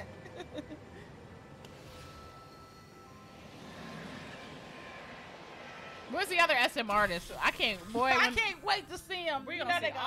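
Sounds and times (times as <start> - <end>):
soft ambient music: 0.0 - 10.0.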